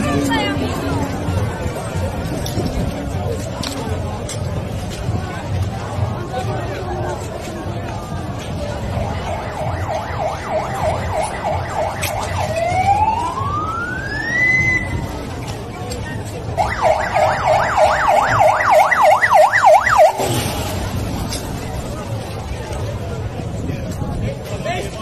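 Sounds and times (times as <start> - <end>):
emergency siren yelp and wail: 8.6 - 15.2, 16.6 - 20.2.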